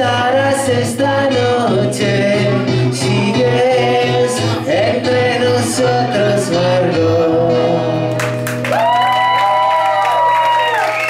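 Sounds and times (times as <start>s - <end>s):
audience cheering: 8.5s - 11.0s
long whoop: 8.7s - 11.0s.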